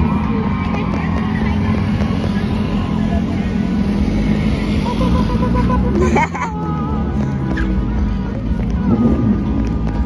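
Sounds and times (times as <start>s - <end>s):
cars passing: 0.0s - 10.0s
traffic rumble: 0.0s - 10.0s.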